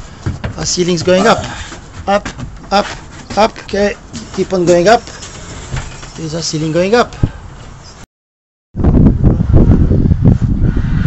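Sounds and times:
short knocks: 0.0s - 4.9s.

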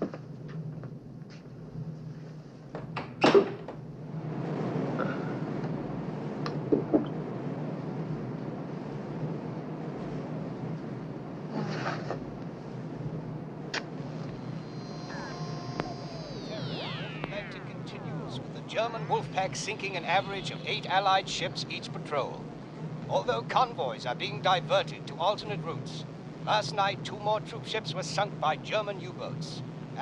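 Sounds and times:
background rumble: 3.7s - 28.8s
radio tuning whistles: 13.8s - 21.7s.

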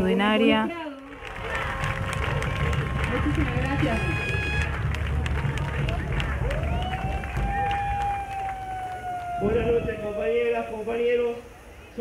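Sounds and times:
crowd noise over public address: 0.0s - 12.0s
scattered claps: 0.9s - 9.7s.

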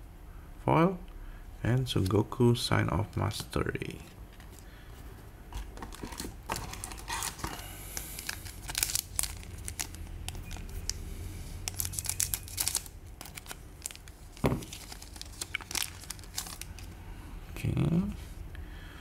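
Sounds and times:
foil pack crinkling: 5.6s - 11.0s, 11.6s - 17.0s.

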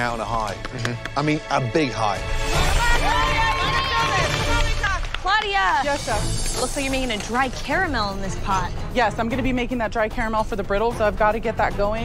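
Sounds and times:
hand clapping: 0.0s - 1.4s, 3.5s - 8.0s
background music: 0.0s - 12.0s
people shouting encouragement: 2.6s - 5.1s.

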